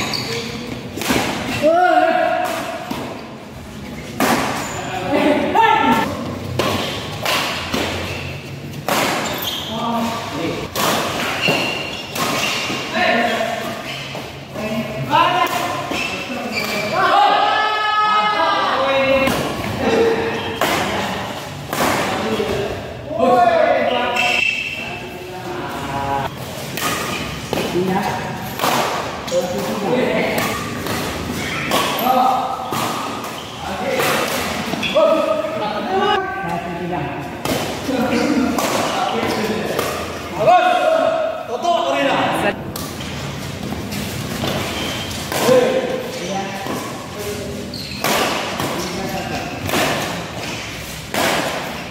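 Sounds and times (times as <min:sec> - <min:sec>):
voices in a large hall: 0:00.0 - 0:51.9
racket hitting shuttlecock: 0:06.0 - 0:08.1, 0:08.7 - 0:09.4, 0:26.6 - 0:27.8, 0:28.6 - 0:29.6, 0:48.0 - 0:51.9.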